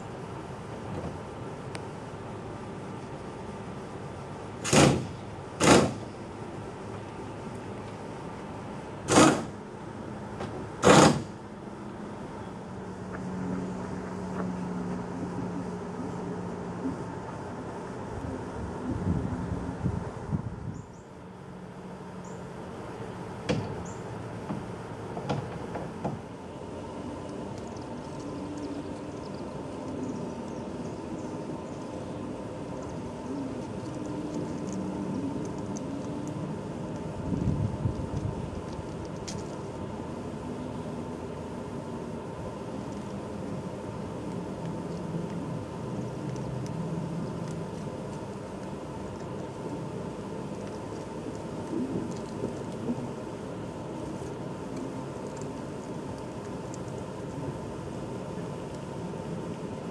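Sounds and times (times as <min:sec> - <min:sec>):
faint low hum: 0:00.0 - 0:59.9.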